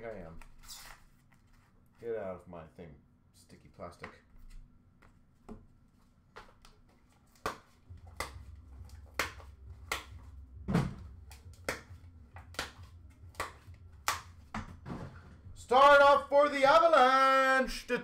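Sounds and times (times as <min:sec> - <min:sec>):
sharp clicks and taps of cards: 0:06.4 - 0:10.2, 0:11.3 - 0:14.7
low hum: 0:07.8 - 0:16.6
man speaking: 0:15.5 - 0:18.0.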